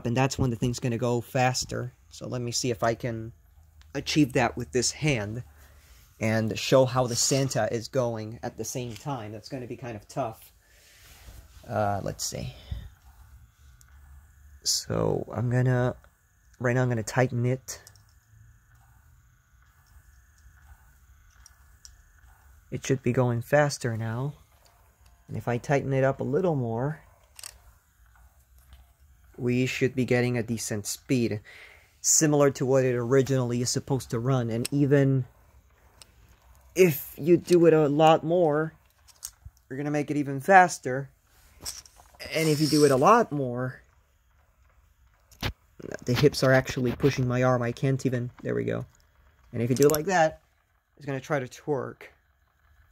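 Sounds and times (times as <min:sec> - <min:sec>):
toy motor whirring and clicking: 0:00.0 - 0:52.9.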